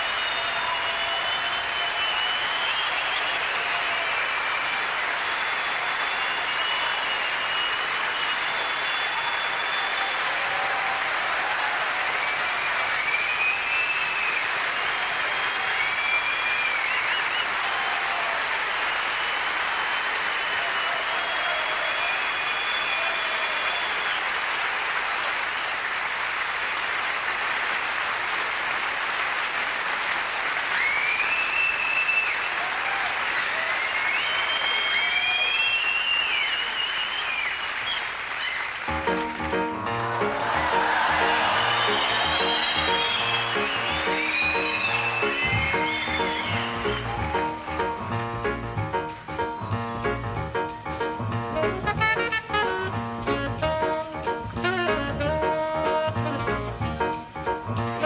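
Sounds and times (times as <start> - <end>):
high whistles: 0.0 - 10.4, 12.2 - 14.5, 15.2 - 17.7, 18.9 - 24.3, 30.8 - 32.6, 33.4 - 38.7, 40.1 - 47.7
audience applauding: 0.0 - 58.0.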